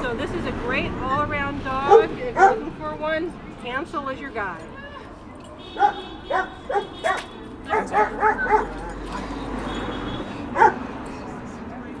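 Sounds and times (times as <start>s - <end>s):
dog yelping: 1.9s - 2.7s, 5.8s - 8.8s, 10.6s - 10.8s.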